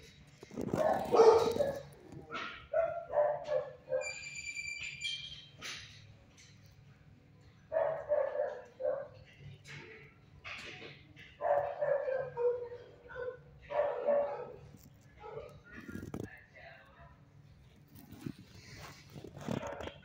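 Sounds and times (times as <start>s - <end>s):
dogs barking: 0.6s - 4.2s, 7.7s - 9.4s, 11.2s - 16.0s.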